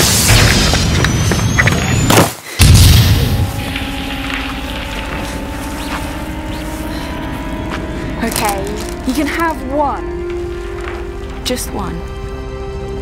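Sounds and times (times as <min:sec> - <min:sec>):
deep boom: 0:00.0 - 0:04.0
rumbling explosion blasts: 0:00.0 - 0:04.1
droning musical chord: 0:03.3 - 0:13.0.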